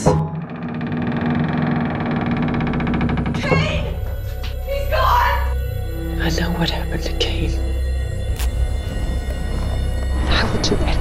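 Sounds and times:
low pulsing drone: 0.0 - 11.0.

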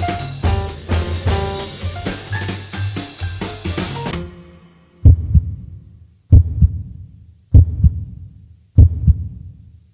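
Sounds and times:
heartbeat double thumps: 5.0 - 9.6.

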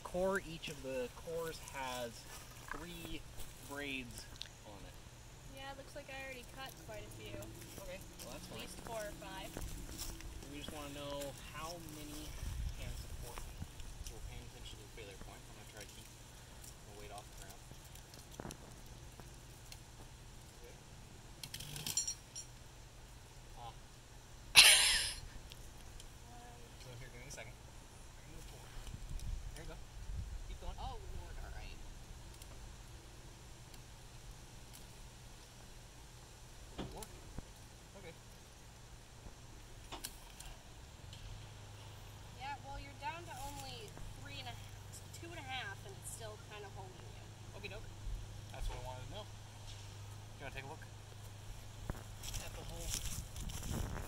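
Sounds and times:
metal climbing gear jingling: 21.5 - 22.5.

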